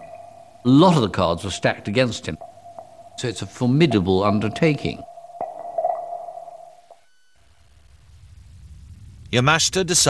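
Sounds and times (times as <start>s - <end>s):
faint higher tone: 0.0s - 7.6s
steady mid-pitched tone: 0.0s - 8.6s
faint low rumble: 0.0s - 10.0s.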